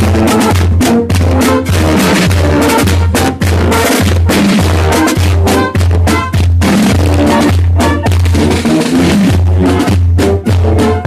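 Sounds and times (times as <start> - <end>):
brass melody: 0.0 - 11.0
marching drums: 0.0 - 11.0.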